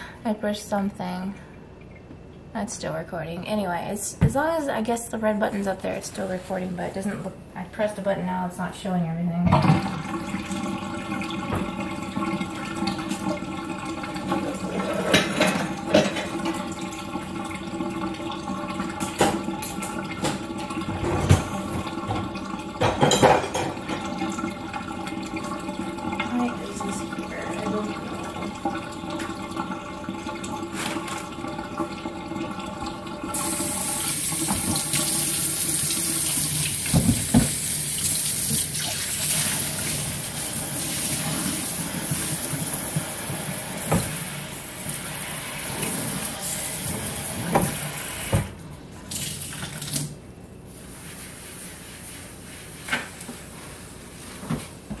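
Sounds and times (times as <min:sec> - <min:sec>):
tap water running: 0:09.5 - 0:55.0
dishes clinking and knocking: 0:14.4 - 0:16.6, 0:18.9 - 0:24.4.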